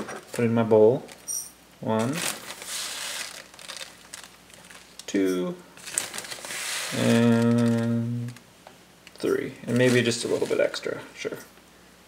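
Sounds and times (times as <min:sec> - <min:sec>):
plastic bag crinkling: 0:00.3 - 0:01.4, 0:02.0 - 0:10.9
seeds rustling: 0:02.0 - 0:08.4, 0:09.1 - 0:11.0.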